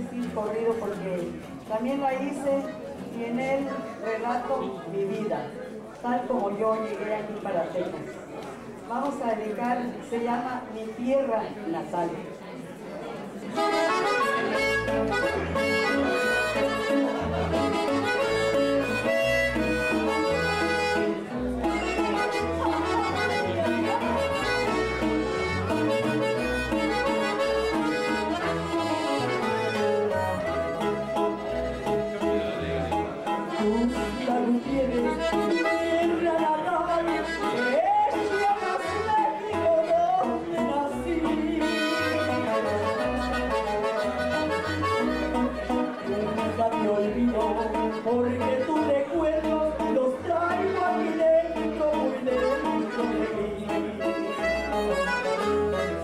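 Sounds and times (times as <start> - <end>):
button accordion melody: 13.5 - 56.0
bass guitar accompaniment: 13.6 - 56.0
woman singing: 33.6 - 42.1.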